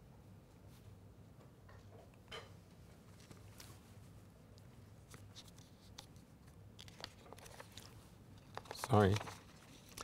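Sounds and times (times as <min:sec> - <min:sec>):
faint clicks and rustles: 0:02.9 - 0:10.0.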